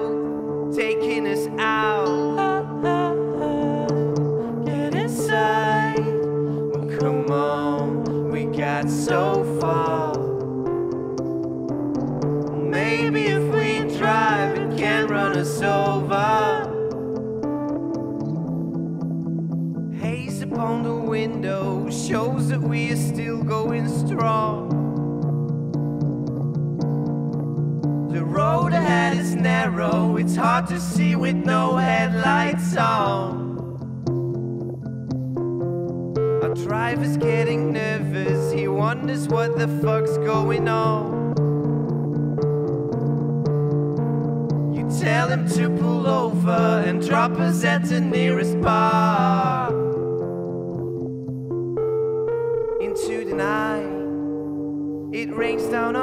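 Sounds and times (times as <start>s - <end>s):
electric guitar: 0.0s - 56.0s
sustained keyboard chords: 0.0s - 56.0s.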